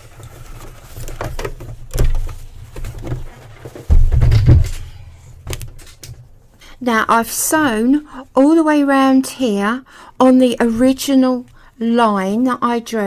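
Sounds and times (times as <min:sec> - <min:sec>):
knocks of handling: 0:00.6 - 0:06.3.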